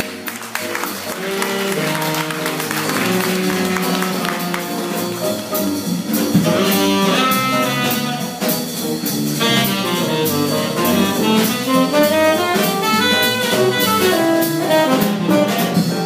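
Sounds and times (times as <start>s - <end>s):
tenor saxophone: 0.0s - 8.6s, 9.3s - 16.0s
drum kit: 0.0s - 16.0s
upright double bass: 0.0s - 16.0s.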